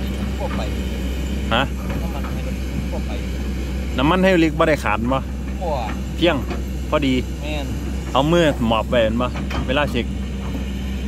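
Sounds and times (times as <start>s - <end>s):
excavator diesel engine droning: 0.0s - 11.0s.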